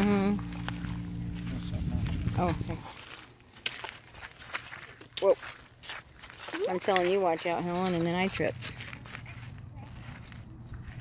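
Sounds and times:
footsteps on gravel and sticks: 0.0s - 11.0s.

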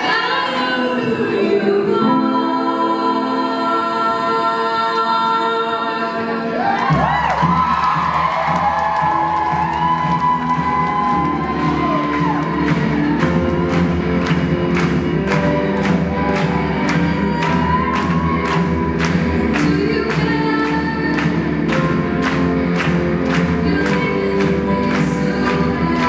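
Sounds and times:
drums steady beat: 6.9s - 26.0s
live rock band playing: 7.0s - 26.0s
girl singing: 19.4s - 21.7s.

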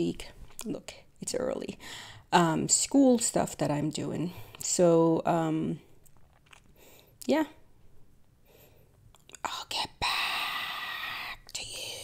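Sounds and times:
woman whispering: 9.4s - 12.0s.

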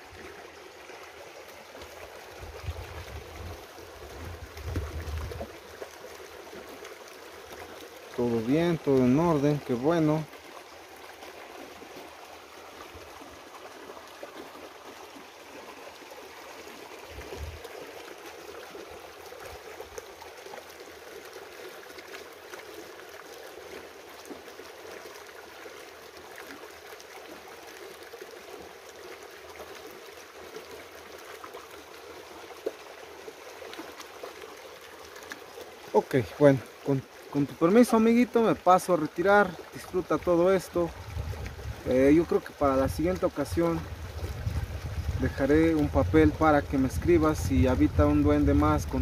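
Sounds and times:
stream water rushing: 0.0s - 49.0s.

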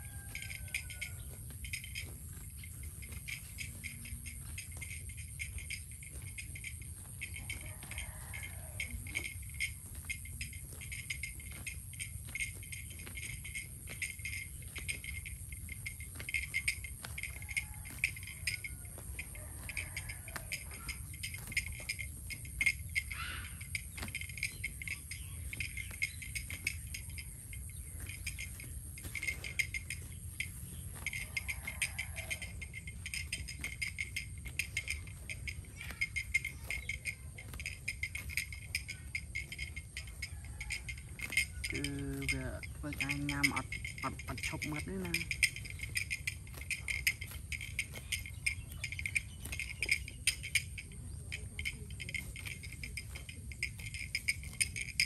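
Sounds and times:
cow tearing grass: 0.0s - 55.0s.

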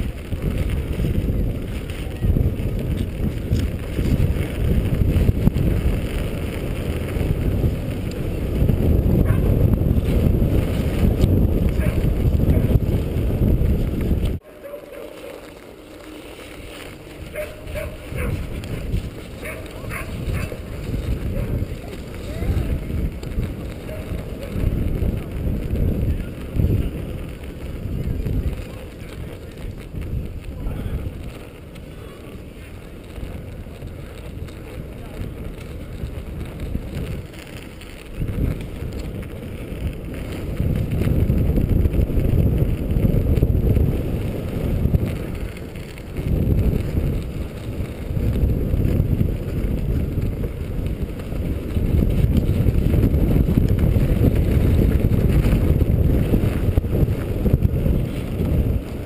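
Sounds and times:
wind buffeting microphone: 0.0s - 14.4s, 15.4s - 59.0s
studded tyres crunching on ice: 0.0s - 59.0s.

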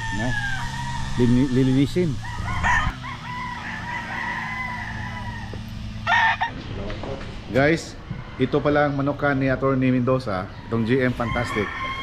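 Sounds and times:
lawn mower engine hum: 0.0s - 8.3s
roosters crowing: 0.0s - 12.0s.

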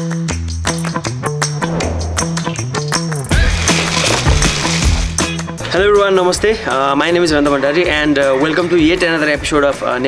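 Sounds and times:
background music: 0.0s - 10.0s
rushing whoosh effect: 1.3s - 3.8s
deep bass thuds: 1.4s - 4.0s.

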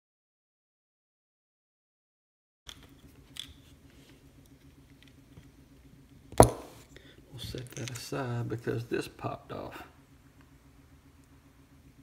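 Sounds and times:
faint low hum: 2.7s - 12.0s
hands handling small motor: 7.4s - 8.3s.

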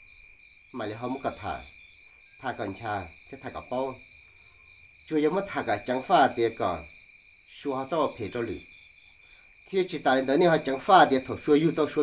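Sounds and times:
night insects trilling: 0.0s - 12.0s.

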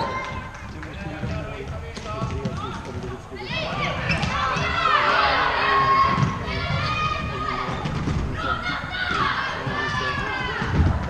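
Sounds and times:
players shouting: 3.4s - 11.0s.

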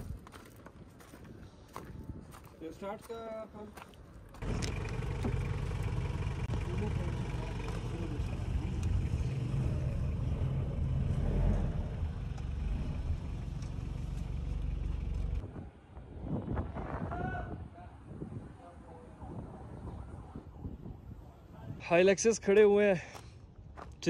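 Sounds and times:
car engine idling: 4.4s - 10.9s.

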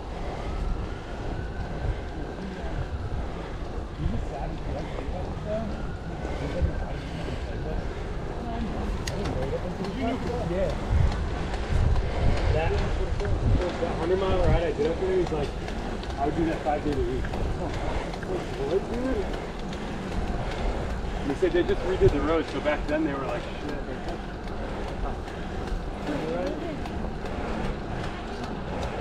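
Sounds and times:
wind noise on microphone: 0.0s - 18.2s
indistinct talking: 0.0s - 29.0s.

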